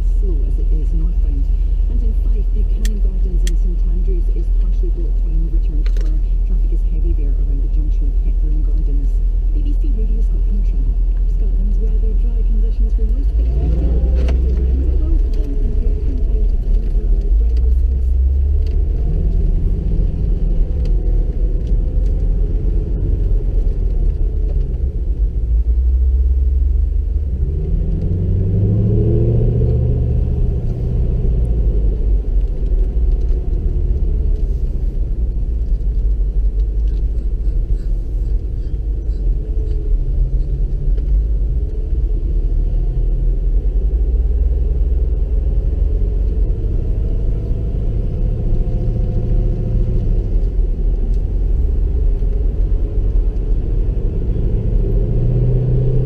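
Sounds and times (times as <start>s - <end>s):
car engine rumbling: 0.0s - 56.0s
tyre and road noise: 0.0s - 56.0s.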